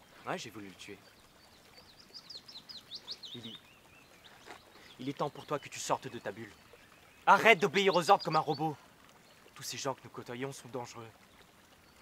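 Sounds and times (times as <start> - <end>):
faint outdoor background noise: 0.0 - 12.0
small bird chirping: 0.8 - 9.4.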